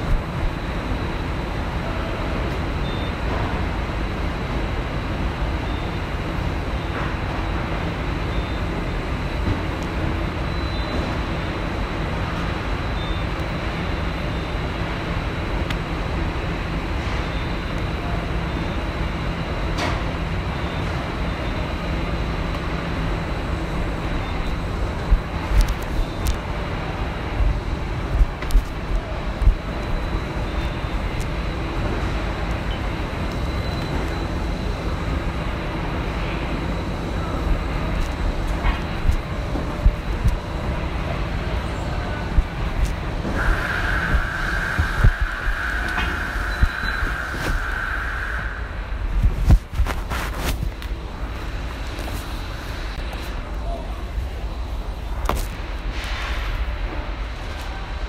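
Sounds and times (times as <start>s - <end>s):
thin high whine: 0.0s - 55.2s
factory machinery rumble: 0.0s - 58.0s.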